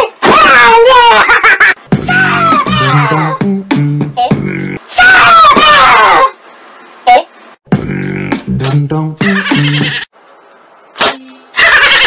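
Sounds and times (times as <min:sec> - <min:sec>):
high-pitched voice wailing: 0:02.1 - 0:03.4.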